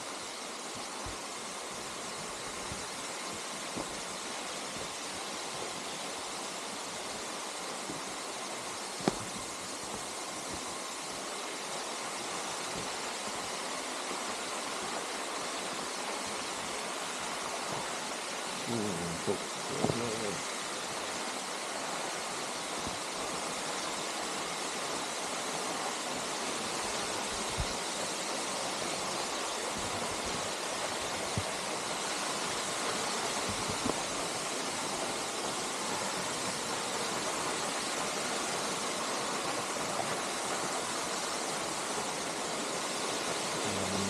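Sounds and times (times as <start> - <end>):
waterfall rushing: 0.0 - 44.0.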